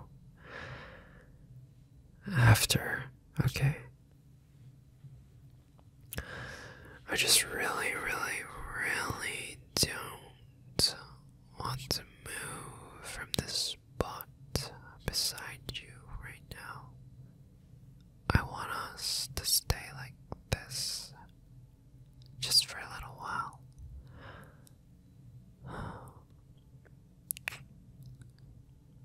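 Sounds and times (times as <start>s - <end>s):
man whispering: 2.2s - 4.0s, 7.0s - 16.9s, 18.2s - 21.3s, 22.4s - 23.7s, 27.3s - 27.7s.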